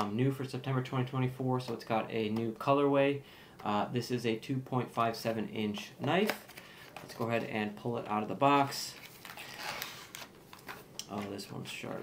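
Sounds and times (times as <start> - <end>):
packaging rustling and scraping: 8.7 - 11.4.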